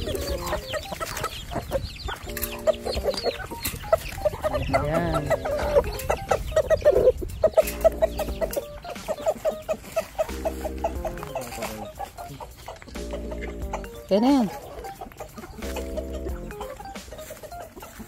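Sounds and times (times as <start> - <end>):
chickens clucking: 0.0 - 18.0.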